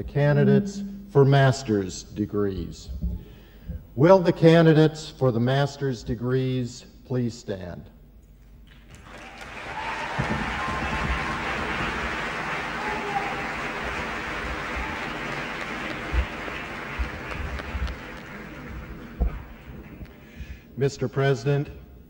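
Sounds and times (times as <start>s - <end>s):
large audience applauding: 8.7s - 20.3s
low knocks: 18.7s - 20.1s.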